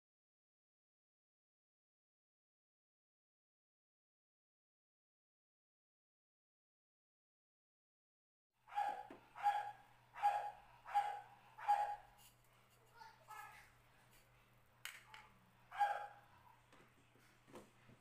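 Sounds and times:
dog barking: 8.7 - 12.1, 15.7 - 16.3.

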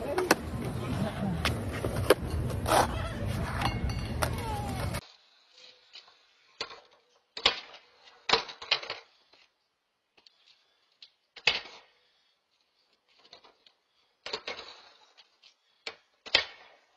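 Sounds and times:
voices: 0.0 - 2.0
skateboard clacks: 0.0 - 5.0
outdoor noise: 0.0 - 16.9.

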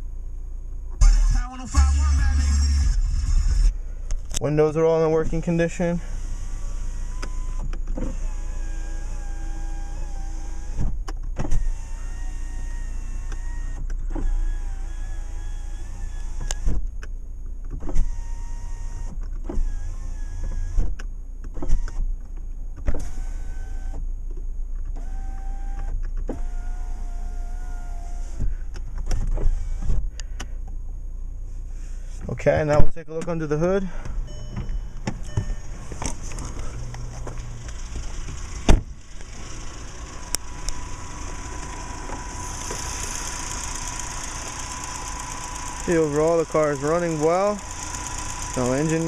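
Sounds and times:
car engine idling: 0.0 - 19.1, 33.4 - 49.0
power window motor whine: 1.0 - 3.8, 5.2 - 16.8, 17.7 - 22.1, 22.8 - 24.1, 24.8 - 30.4, 34.2 - 49.0
window glass stop click: 34.6 - 49.0.

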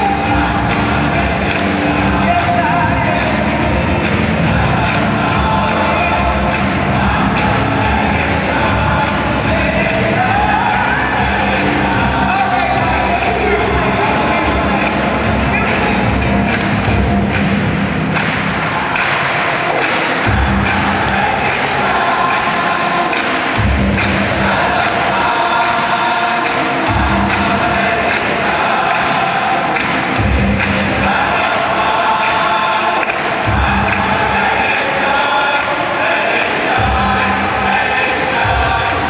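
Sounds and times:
gospel choir singing: 0.0 - 39.0.

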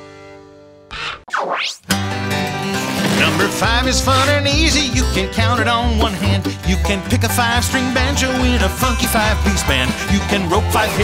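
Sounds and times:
swooping sound effect: 0.9 - 1.9
bouncy country tune with plucked strings: 1.8 - 11.0
person singing: 3.1 - 11.0.

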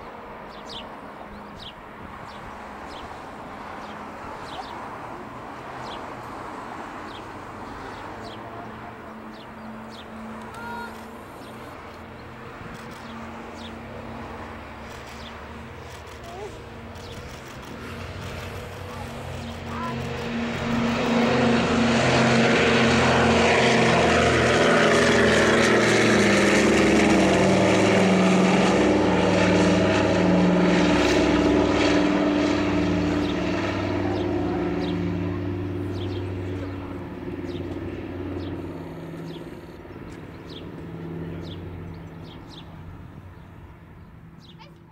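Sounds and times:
propeller plane engines drone: 0.0 - 44.9.

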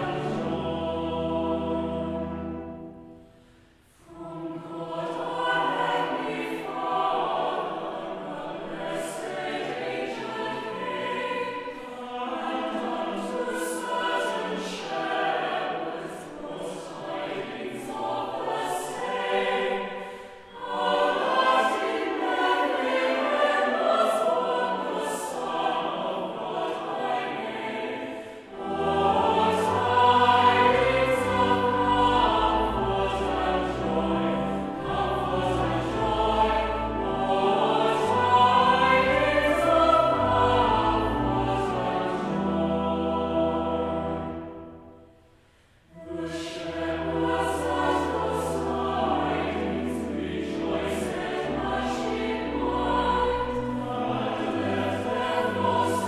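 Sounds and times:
choir singing a carol: 0.0 - 56.0.

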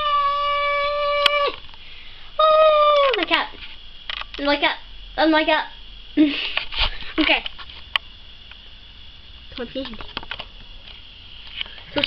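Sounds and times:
child cheering yay: 0.0 - 1.6.

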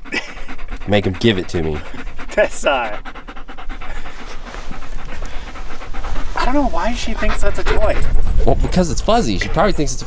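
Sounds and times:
dog panting: 0.0 - 10.0.

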